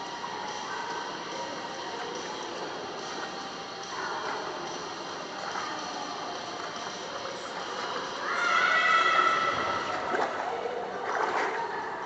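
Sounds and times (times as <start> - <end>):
indoor pool water and echo: 0.0 - 12.0.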